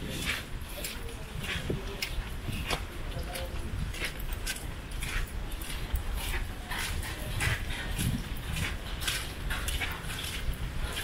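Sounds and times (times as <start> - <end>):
gusty wind on microphone: 0.0 - 11.0.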